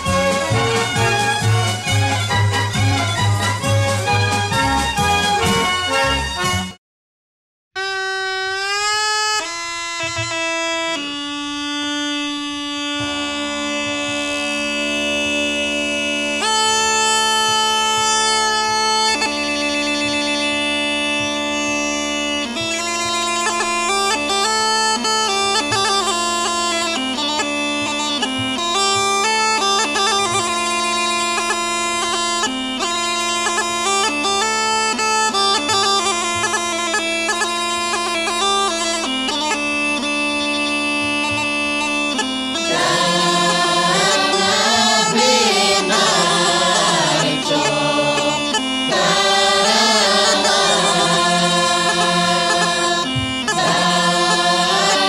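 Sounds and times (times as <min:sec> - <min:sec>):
bagpipe melody over drone: 0:00.0 - 0:06.8, 0:07.8 - 0:55.0.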